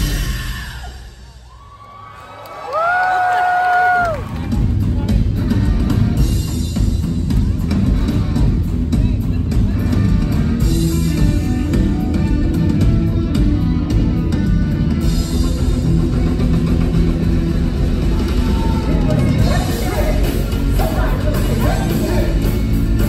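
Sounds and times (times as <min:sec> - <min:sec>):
live rock band: 0:00.0 - 0:01.5, 0:02.9 - 0:23.0.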